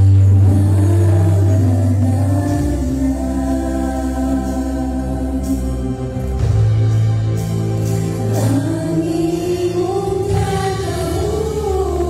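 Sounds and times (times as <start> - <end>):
band playing: 0.0 - 12.0
group singing worship song: 0.0 - 12.0.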